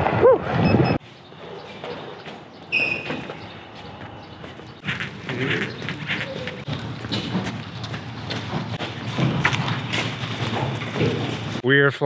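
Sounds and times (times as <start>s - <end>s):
footsteps: 1.0s - 11.6s
knocks and thumps: 5.9s - 11.6s.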